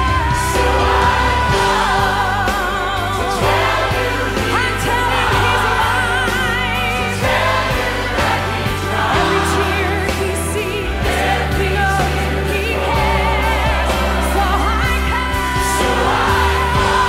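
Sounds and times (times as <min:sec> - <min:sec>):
lead singer with vibrato: 0:00.0 - 0:17.0
live gospel song with band: 0:00.0 - 0:17.0
low bass notes: 0:00.0 - 0:17.0.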